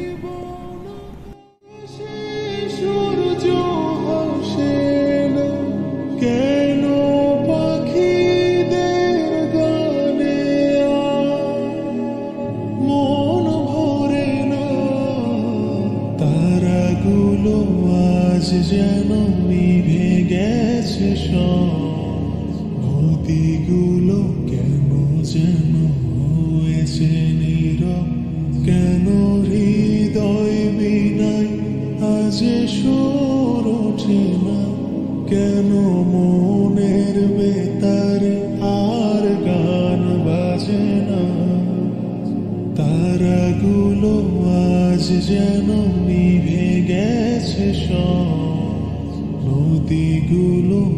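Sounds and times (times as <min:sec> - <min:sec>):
slow chant-like vocal music: 0:00.0 - 0:50.9
low steady drone: 0:02.0 - 0:50.9.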